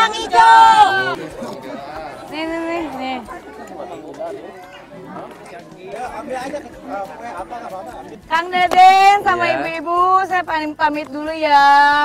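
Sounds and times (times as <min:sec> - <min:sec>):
overlapping voices chatter: 0:00.0 - 0:12.0.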